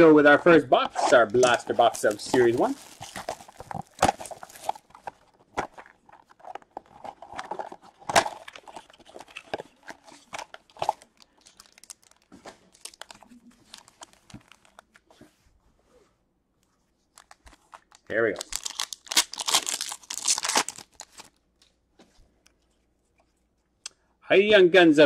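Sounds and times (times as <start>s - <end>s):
foil packs rustling: 1.0s - 6.6s, 7.4s - 14.7s, 18.3s - 21.3s
plastic wrap crinkling and tearing: 1.0s - 15.0s, 17.1s - 21.4s.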